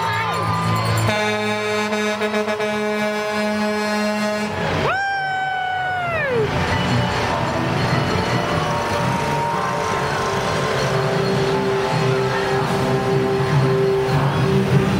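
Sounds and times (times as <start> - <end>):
music: 0.0 - 1.6, 5.8 - 14.9
low engine rumble: 0.0 - 14.9
lorry air horn blast: 1.0 - 4.7.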